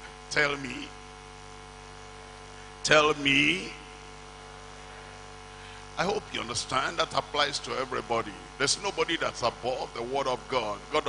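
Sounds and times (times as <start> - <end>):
electrical mains hum: 0.0 - 11.0
man speaking: 0.3 - 1.0, 2.8 - 3.8, 6.0 - 11.0.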